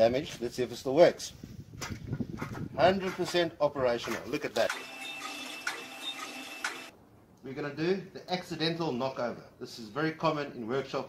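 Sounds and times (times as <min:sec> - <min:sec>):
sharp clicks: 0:04.6 - 0:06.9
machine running with high whine: 0:04.7 - 0:06.9.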